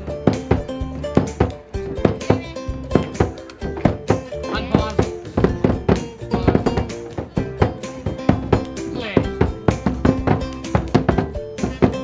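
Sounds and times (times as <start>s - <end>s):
drum beaten with sticks: 0.0s - 12.0s.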